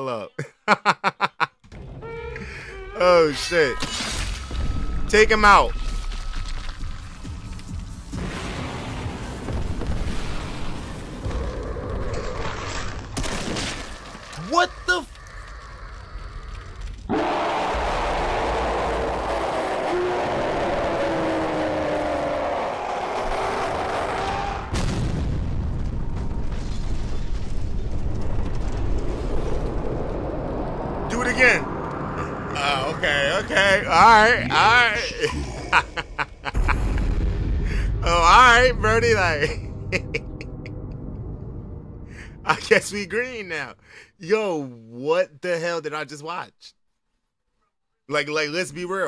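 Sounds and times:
deep booms and blasts: 0:08.0 - 0:12.4, 0:24.6 - 0:34.3, 0:35.8 - 0:42.4
voices: 0:31.1 - 0:36.6.

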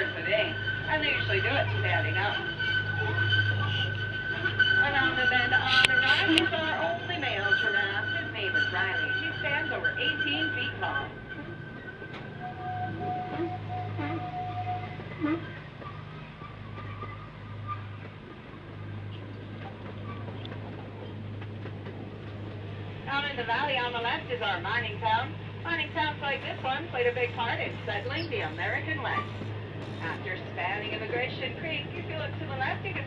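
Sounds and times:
voices: 0:00.0 - 0:17.2, 0:23.0 - 0:33.0
train ride humming: 0:00.0 - 0:33.0.

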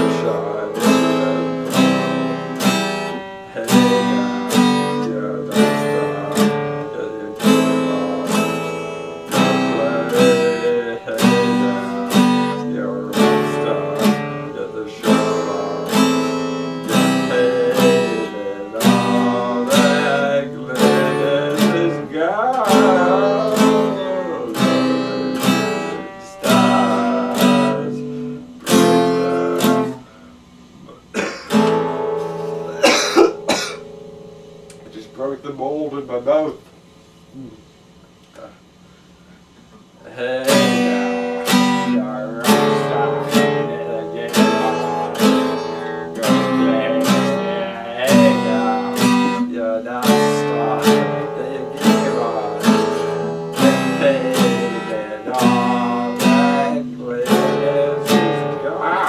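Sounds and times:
man's voice: 0:00.0 - 0:02.4, 0:03.0 - 0:30.0, 0:34.8 - 0:36.6, 0:40.0 - 0:59.0
acoustic guitar strumming: 0:00.0 - 0:59.0.

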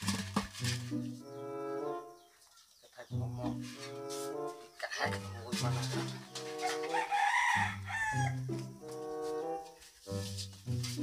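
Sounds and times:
background music of held notes: 0:00.0 - 0:11.0
rooster crowing: 0:06.5 - 0:08.6.

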